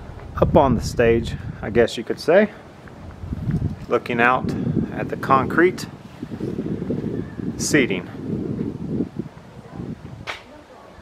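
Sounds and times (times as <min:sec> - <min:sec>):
faint outdoor air noise: 0:00.0 - 0:11.0
wind buffeting microphone: 0:00.0 - 0:11.0.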